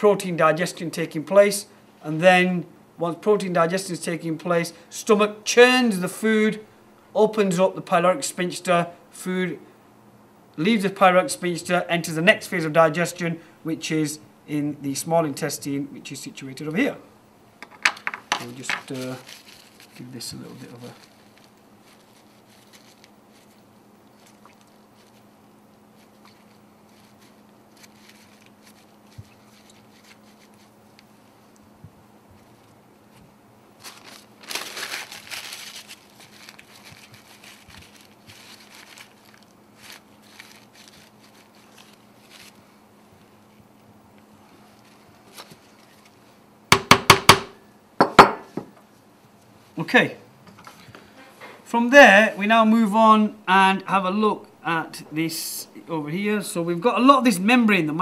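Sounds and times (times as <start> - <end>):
steady low hum: 0.0 - 58.0
paper towel rustling and dabbing: 18.4 - 46.4
tools knocking on wooden board: 46.7 - 48.7.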